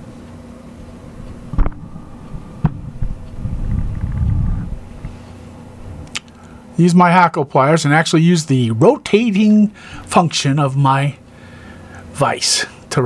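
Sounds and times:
faint steady hum: 0.0 - 13.0
low rumble: 1.1 - 6.1.

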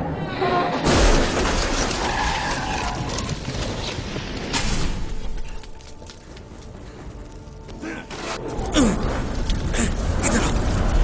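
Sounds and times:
debris clattering: 0.8 - 11.0.

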